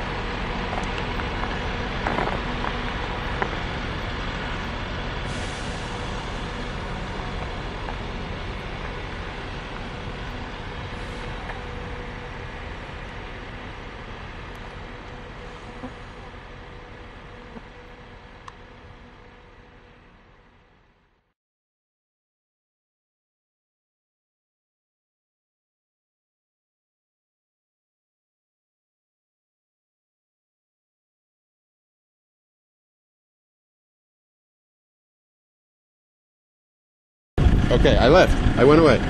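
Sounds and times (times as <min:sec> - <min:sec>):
low rumble: 0:00.0 - 0:21.2, 0:37.4 - 0:39.0
hiss: 0:05.3 - 0:06.5.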